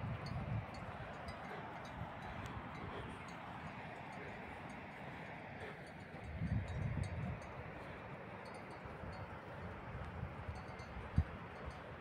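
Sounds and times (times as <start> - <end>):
faint high tinkling: 0.0 - 12.0
wind buffeting microphone: 0.0 - 12.0.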